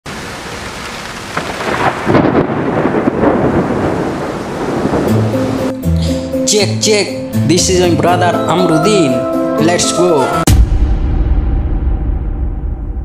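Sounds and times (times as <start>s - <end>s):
steady rain: 0.1s - 6.3s
rumbling thunder: 1.3s - 5.8s.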